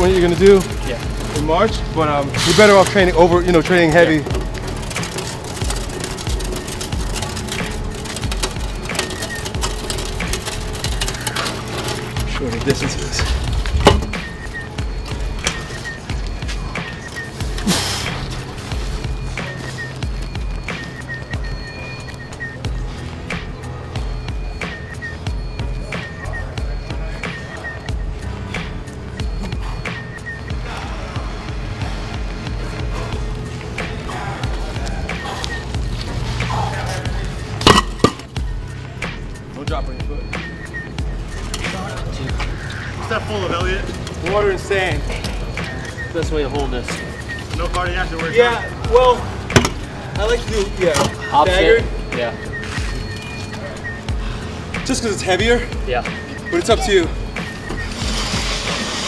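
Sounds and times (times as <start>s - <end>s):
steady low rumble: 13.2s - 15.4s.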